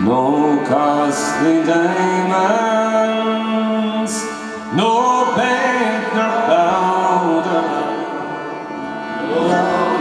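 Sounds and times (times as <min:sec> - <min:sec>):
acoustic guitar: 0:00.0 - 0:10.0
concertina: 0:00.0 - 0:10.0
man singing: 0:00.0 - 0:10.0.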